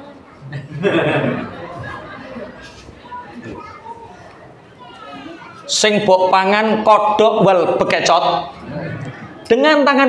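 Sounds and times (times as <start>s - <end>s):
faint audience voices: 0.0s - 9.7s
child's voice: 3.0s - 5.7s.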